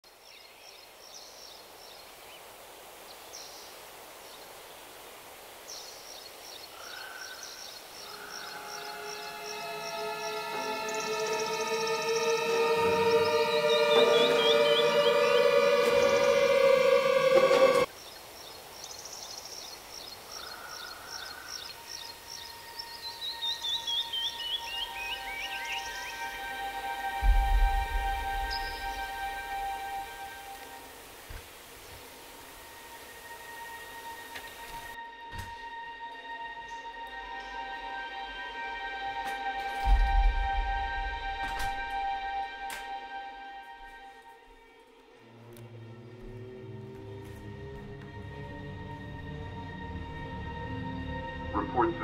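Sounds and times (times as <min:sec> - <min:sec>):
high bird trills: 0:06.7 - 0:17.8, 0:20.3 - 0:30.8
suspenseful film score: 0:06.8 - 0:17.9, 0:20.3 - 0:52.0
low boom: 0:27.2 - 0:29.6.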